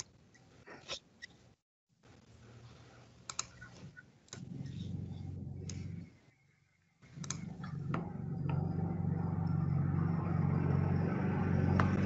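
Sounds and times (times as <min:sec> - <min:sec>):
mouse clicks: 0:03.3 - 0:03.7
low engine-like hum: 0:04.4 - 0:06.4, 0:07.0 - 0:12.0.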